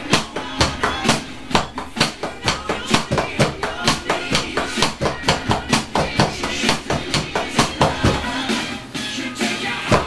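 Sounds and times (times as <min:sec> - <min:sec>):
pop-rock song with vocals: 0:00.0 - 0:10.0.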